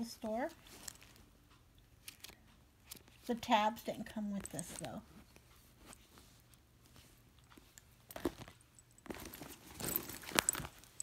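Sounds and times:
rustling in a handbag: 0.0 - 1.3, 4.3 - 11.0.

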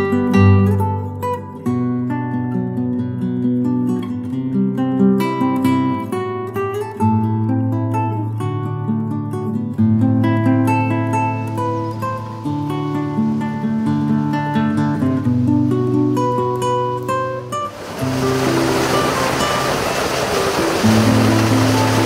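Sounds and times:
plucked acoustic guitar: 0.0 - 22.0
loud steady rushing noise: 17.7 - 22.0.

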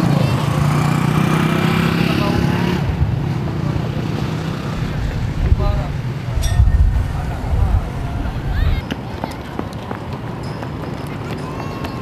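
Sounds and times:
distant indistinct voices: 0.0 - 12.0.

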